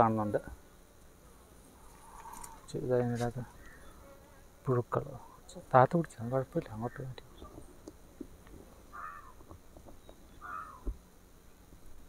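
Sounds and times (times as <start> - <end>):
bees buzzing close by: 0.0 - 12.0
honeybees buzzing: 0.0 - 12.0.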